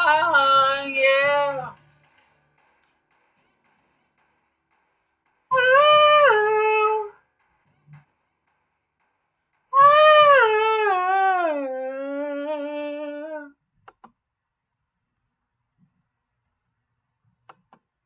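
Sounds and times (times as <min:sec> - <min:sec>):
man singing a cappella: 0:00.0 - 0:01.8, 0:09.8 - 0:13.5.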